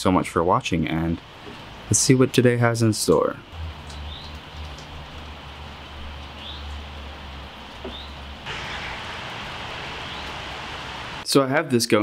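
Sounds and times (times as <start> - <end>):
steady rain falling: 1.2 - 11.2
high bird chirps: 9.8 - 10.4.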